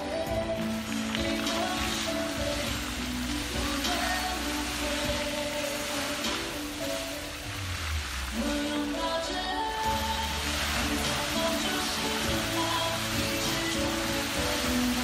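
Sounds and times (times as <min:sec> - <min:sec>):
fountain jets spraying: 0:00.0 - 0:15.0
music playing: 0:00.0 - 0:15.0
water splashing into pool: 0:00.6 - 0:15.0.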